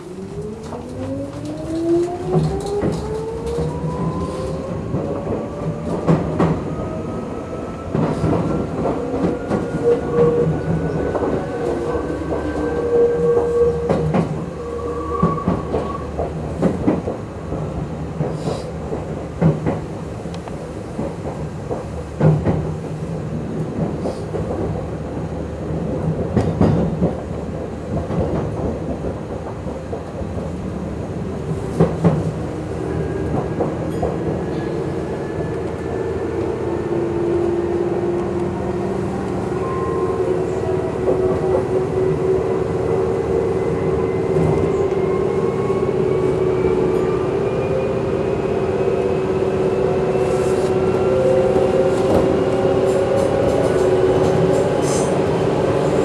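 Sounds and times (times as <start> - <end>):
train wheel rumble: 0.0 - 56.0.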